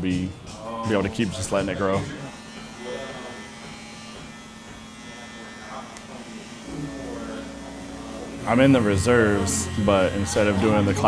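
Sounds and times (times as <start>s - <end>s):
electric hair clippers buzzing: 1.5s - 11.0s.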